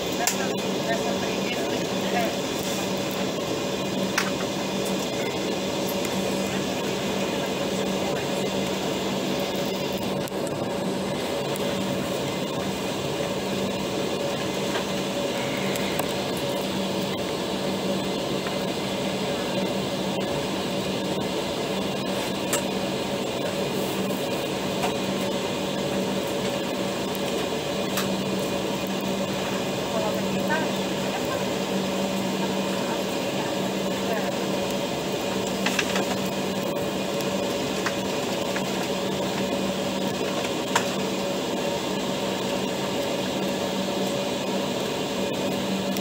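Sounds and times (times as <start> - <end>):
airliner cabin engine rush: 0.0 - 46.0.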